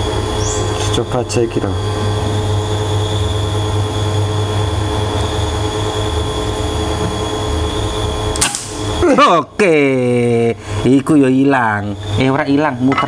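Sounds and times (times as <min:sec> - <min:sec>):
low mechanical hum: 0:00.0 - 0:13.0
air rifle shot: 0:08.4 - 0:08.9.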